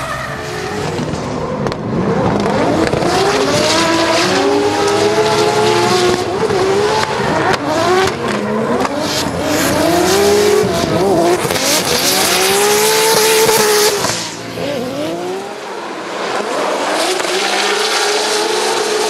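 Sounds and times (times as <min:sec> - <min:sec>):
car engines revving: 0:00.0 - 0:19.0.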